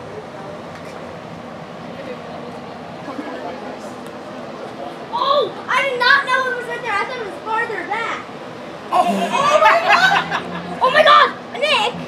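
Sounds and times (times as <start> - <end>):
children playing: 5.0 - 12.0
child's high-pitched voice: 5.1 - 8.3, 10.8 - 12.0.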